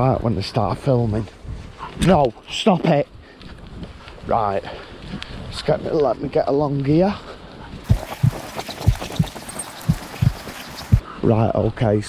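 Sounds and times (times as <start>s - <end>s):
footsteps in long grass: 7.8s - 11.0s.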